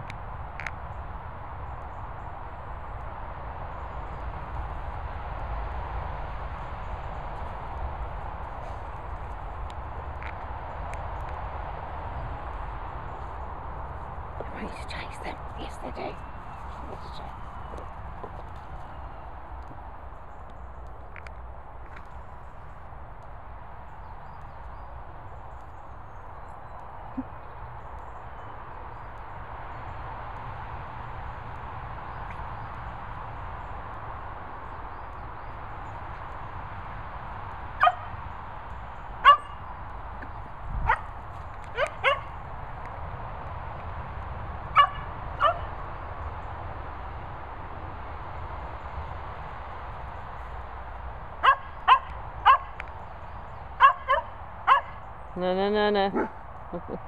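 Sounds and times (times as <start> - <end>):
dog barking: 37.8 - 38.1, 39.2 - 39.6, 40.8 - 41.1, 41.7 - 42.4, 44.7 - 45.7, 51.4 - 52.8, 53.8 - 55.0, 56.1 - 56.4.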